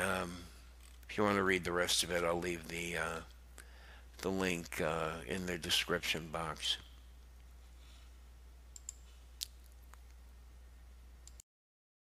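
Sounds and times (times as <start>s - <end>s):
steady low hum: 0.0s - 11.4s.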